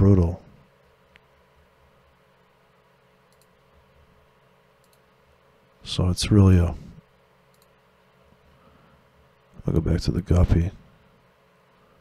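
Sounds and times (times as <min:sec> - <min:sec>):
man speaking: 0:00.0 - 0:00.5, 0:09.6 - 0:10.8
steady low hum: 0:00.0 - 0:12.0
faint computer mouse clicks: 0:03.3 - 0:03.6, 0:04.8 - 0:05.1, 0:07.5 - 0:07.8.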